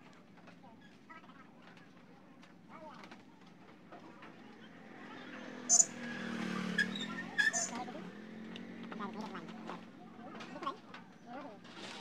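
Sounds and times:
vehicle engine passing by: 4.8 - 10.2.

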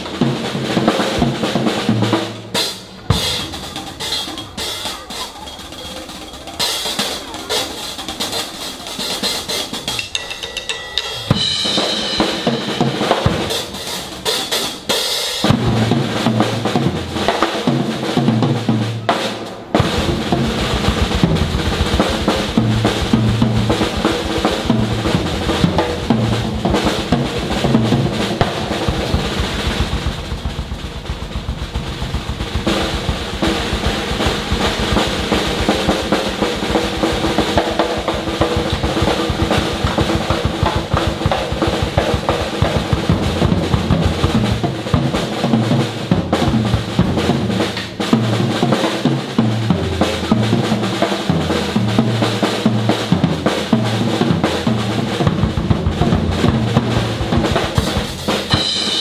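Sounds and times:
brass band playing: 0.0 - 59.0
drum kit beat: 0.0 - 59.0.

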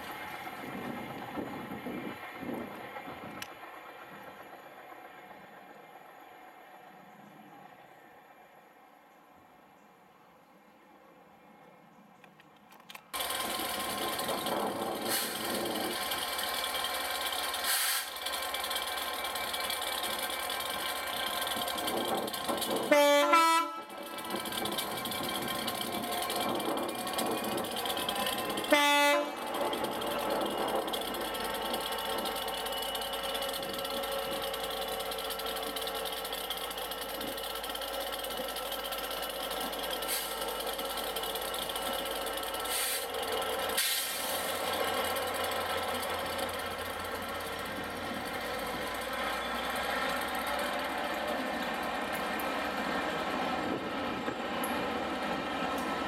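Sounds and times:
train running past: 0.0 - 11.9, 12.9 - 56.0
locomotive horn blast: 22.8 - 24.3, 28.3 - 30.5.

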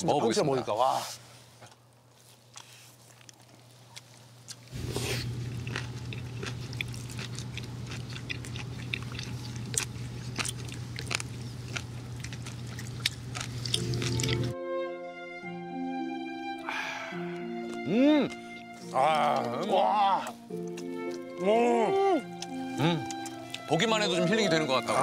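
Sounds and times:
chewing with wet crunches: 1.6 - 14.6, 17.5 - 21.4, 22.3 - 23.8
low steady hum: 3.6 - 14.6
music: 13.7 - 25.0.

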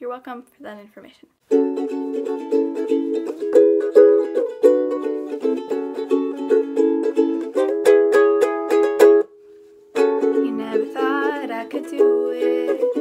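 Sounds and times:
ukulele strumming chords: 1.4 - 13.0.

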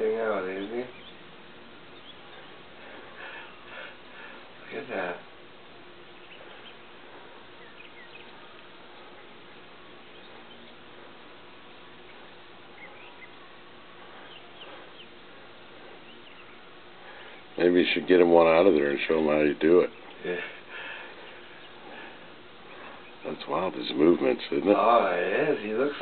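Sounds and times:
outdoor background noise: 0.0 - 26.0.

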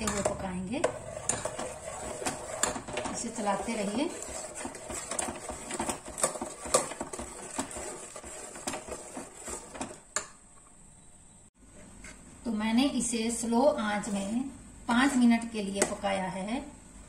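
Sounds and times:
spoon stirring in metal pot: 0.0 - 10.4.

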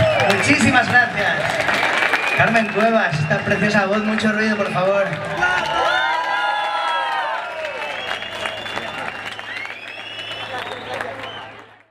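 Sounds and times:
crowd clapping and cheering: 0.0 - 11.9
shouted cries: 5.3 - 8.0.

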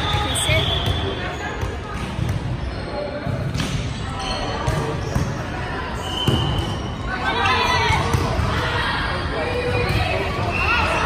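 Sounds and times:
ball bouncing on gym floor: 4.6 - 5.4, 7.8 - 8.7.

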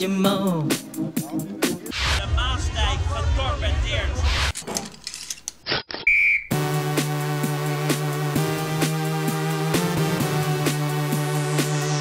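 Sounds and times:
electronic dance music: 0.2 - 4.6, 6.5 - 12.0
high whistle note: 6.0 - 6.7.

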